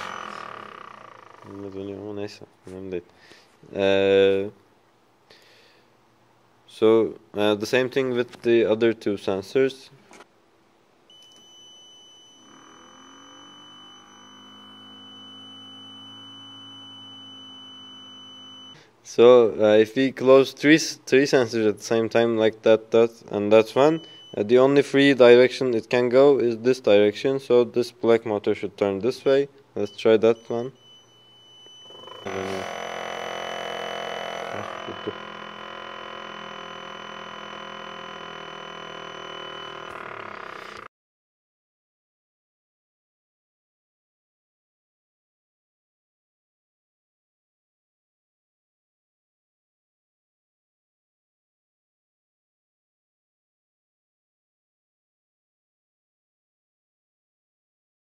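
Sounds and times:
small electric motor spinning: 0.0s - 1.5s, 31.9s - 40.9s
high-pitched buzzer tone: 0.0s - 1.8s, 11.1s - 18.9s, 23.7s - 25.4s, 29.9s - 40.9s.

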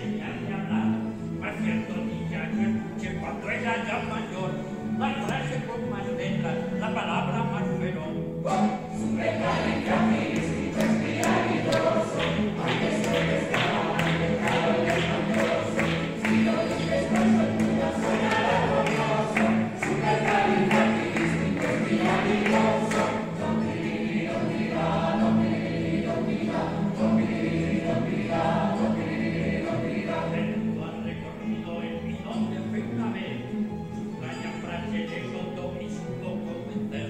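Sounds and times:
plucked-string orchestra playing: 0.0s - 37.0s
voices singing in chorus: 8.4s - 31.1s.

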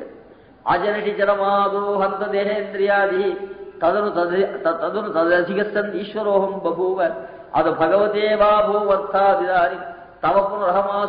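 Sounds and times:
man chanting in monotone: 0.0s - 11.0s.

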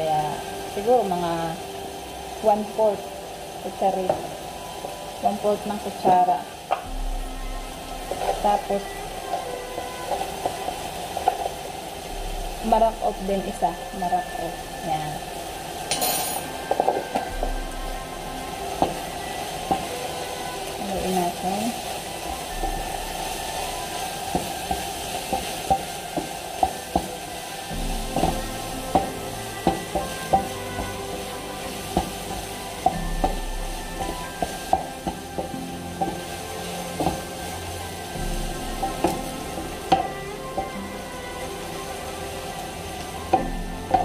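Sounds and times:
food sizzling in a frying pan: 0.0s - 44.0s.

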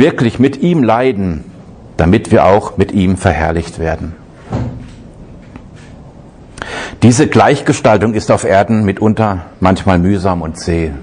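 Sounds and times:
dull thump: 4.5s - 4.8s.

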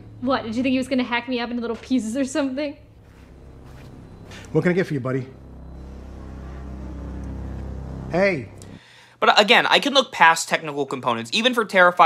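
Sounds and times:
low steady drone: 0.0s - 9.0s.

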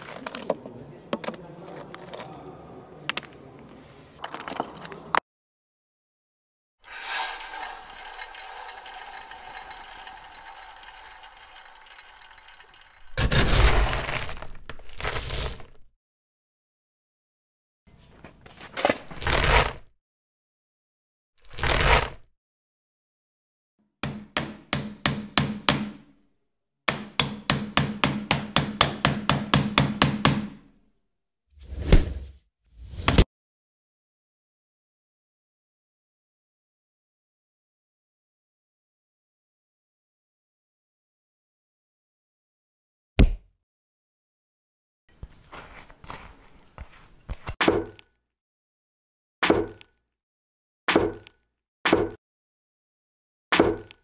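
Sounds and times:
metal mallet pounding bowl: 6.9s - 13.2s
knife chopping on cutting board: 49.4s - 49.8s, 50.9s - 51.3s, 51.9s - 52.2s.

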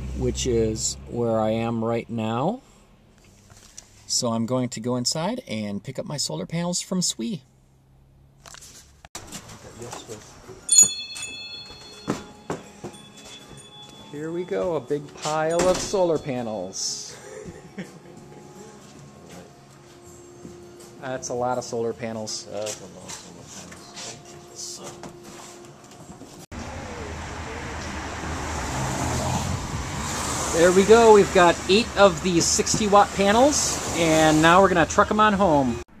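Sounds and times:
traffic noise with low rumble: 0.0s - 36.0s
footsteps: 8.5s - 16.3s, 22.4s - 26.5s
shop door bell jingle: 10.6s - 22.8s.

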